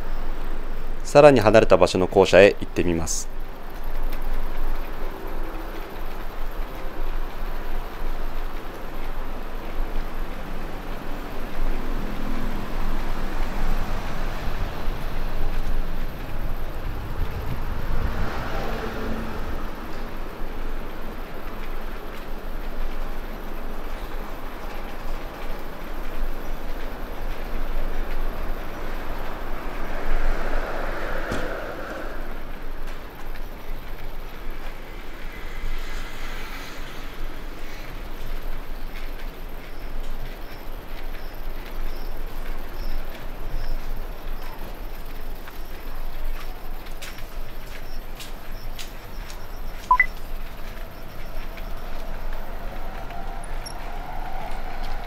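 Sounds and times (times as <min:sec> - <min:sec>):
city street rumble: 0:00.0 - 0:55.0.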